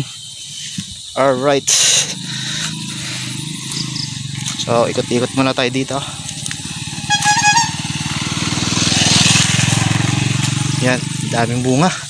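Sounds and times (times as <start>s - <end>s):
motorcycle engine running: 2.1s - 12.0s
short high beep: 7.1s - 7.8s.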